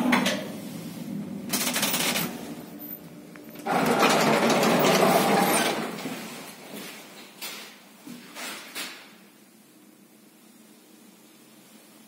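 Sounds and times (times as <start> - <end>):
elevator door drive running: 0.0 - 6.6
elevator doors clattering: 3.5 - 6.4.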